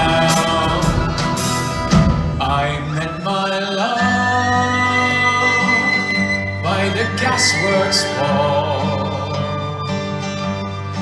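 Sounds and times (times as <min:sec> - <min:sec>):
folk band playing: 0:00.0 - 0:11.0.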